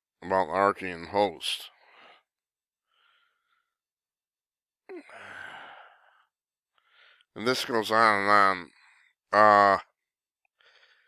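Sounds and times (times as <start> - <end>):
man sighing: 4.9 - 6.1.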